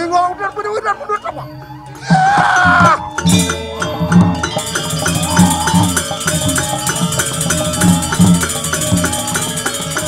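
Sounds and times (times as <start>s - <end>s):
metal gongs and metallophones ringing: 0.0s - 10.0s.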